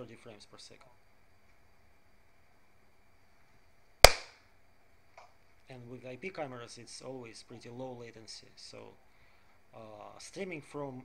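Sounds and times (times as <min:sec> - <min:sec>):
clap echo: 0:04.1 - 0:04.3
sharp hand clap: 0:04.1 - 0:04.3.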